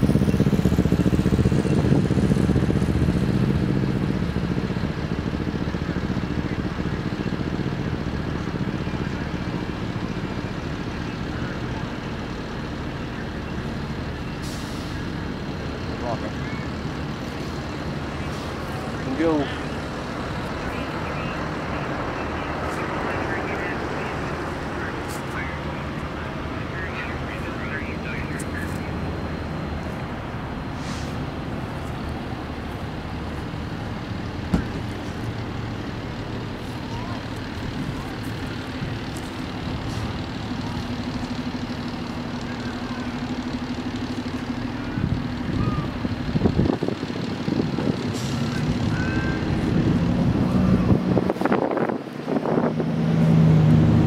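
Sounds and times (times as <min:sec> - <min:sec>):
vehicle engine rumble: 0:00.0 - 0:54.0
onlookers' voices: 0:04.1 - 0:52.6.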